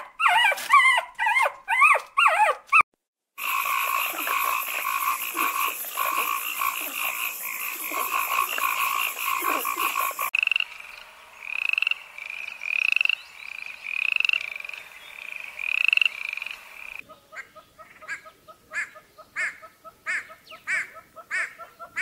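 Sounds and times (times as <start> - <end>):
frog buzzy trills: 3.4 - 10.8
frog chorus pulsed calls: 3.4 - 22.0.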